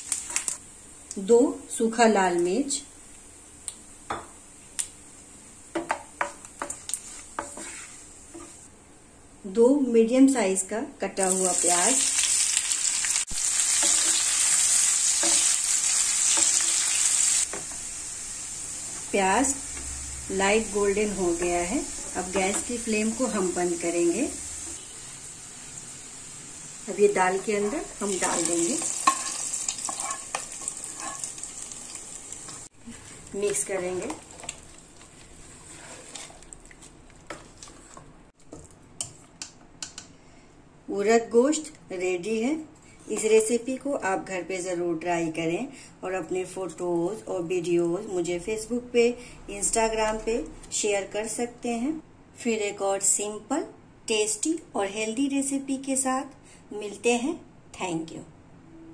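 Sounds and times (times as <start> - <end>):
onions sizzling in a pan: 0.0 - 8.7, 11.2 - 38.0
stirring in a pan: 5.7 - 8.7, 13.2 - 17.9, 27.0 - 39.4.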